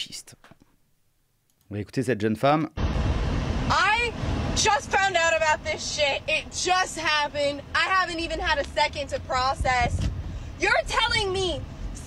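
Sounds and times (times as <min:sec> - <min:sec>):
car cabin road noise: 0:02.8 - 0:12.0
woman talking: 0:03.7 - 0:10.0, 0:10.6 - 0:11.6.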